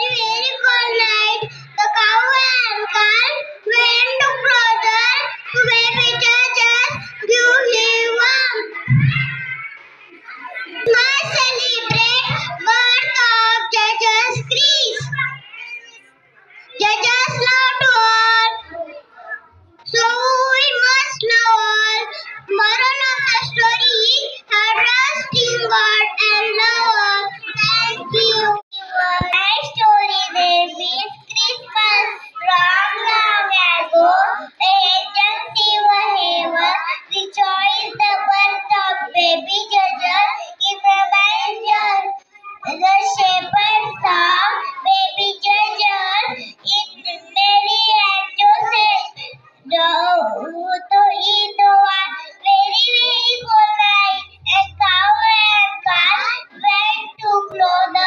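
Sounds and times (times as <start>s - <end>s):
young children singing: 16.6s - 58.0s.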